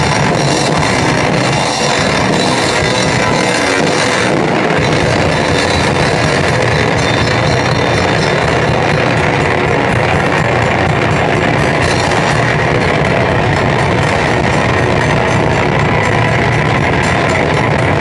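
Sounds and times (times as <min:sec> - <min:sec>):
heavy metal rock band playing: 0:00.0 - 0:18.0.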